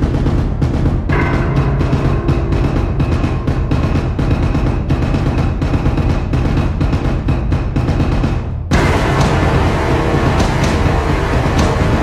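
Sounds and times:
music with heavy low drums: 0.0 - 12.0
percussive hits: 0.0 - 12.0.

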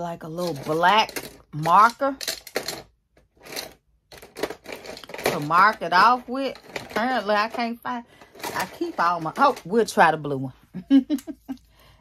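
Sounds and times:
craft supplies clattering and rustling: 0.2 - 10.0.

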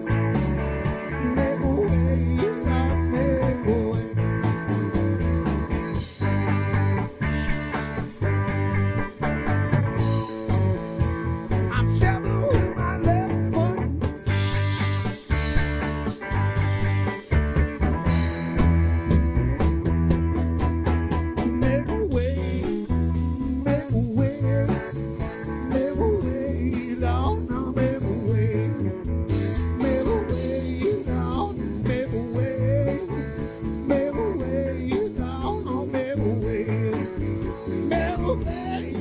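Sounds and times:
man singing: 0.0 - 6.6, 11.6 - 14.2, 21.4 - 39.0
drum kit: 0.0 - 39.0
electric guitar: 0.0 - 39.0.

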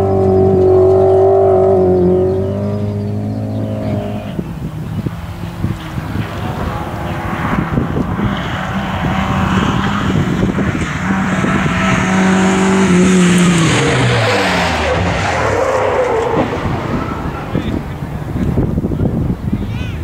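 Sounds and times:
rally car passing by: 0.0 - 19.4.

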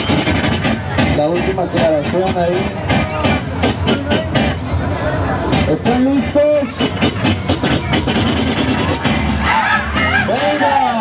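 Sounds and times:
music with strong drum beat: 0.0 - 4.7, 5.4 - 11.0.

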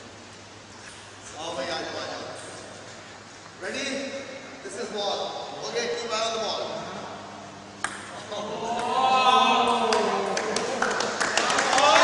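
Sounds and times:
men's voices: 8.1 - 12.0.

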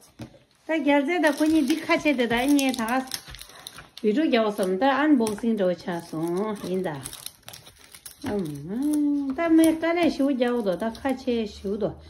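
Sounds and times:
packaging wrap crinkling and tearing: 0.0 - 11.6.

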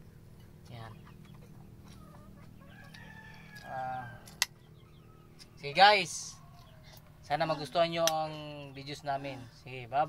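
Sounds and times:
low background hum: 0.0 - 10.0
chicken clucking: 0.9 - 3.7.

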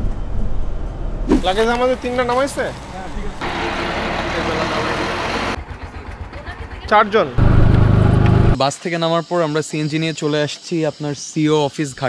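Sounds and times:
low engine hum: 0.0 - 8.6
vehicle rushing hiss: 1.2 - 5.6.

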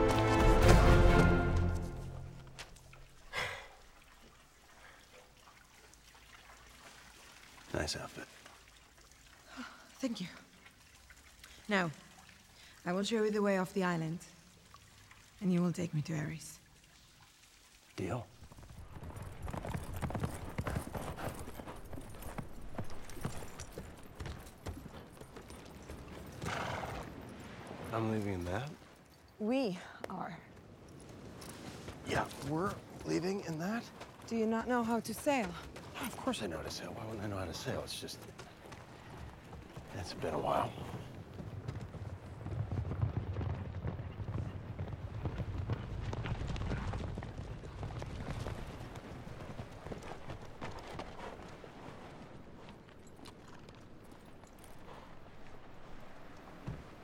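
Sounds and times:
horse hooves clip-clopping: 0.0 - 3.4, 18.3 - 29.4, 30.0 - 57.0.

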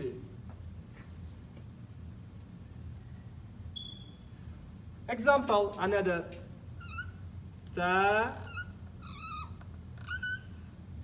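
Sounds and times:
marker squeaking on whiteboard: 6.8 - 7.3, 8.2 - 10.7.

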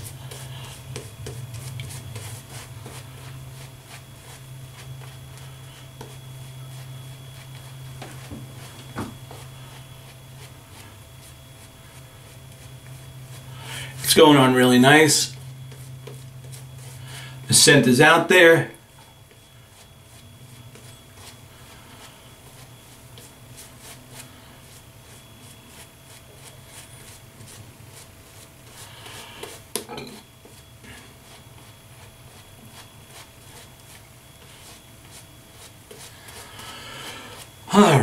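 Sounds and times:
shaving brush rubbing lather: 0.0 - 29.7, 30.3 - 38.0.

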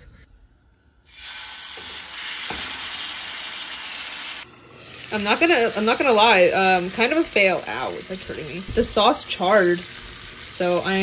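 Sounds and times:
fish sizzling in a pan: 1.1 - 11.0.

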